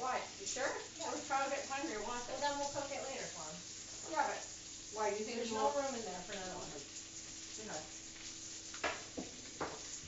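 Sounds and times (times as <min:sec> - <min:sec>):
pork chops sizzling in a pan: 0:00.0 - 0:10.0.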